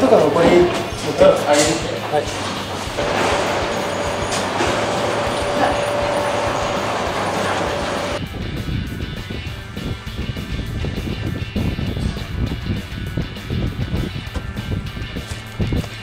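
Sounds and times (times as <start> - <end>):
material lift running with whine: 2.2 - 8.2.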